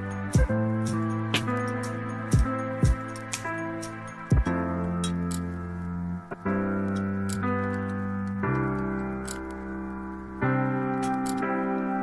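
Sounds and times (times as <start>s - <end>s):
lofi hip hop instrumental: 0.0s - 12.0s.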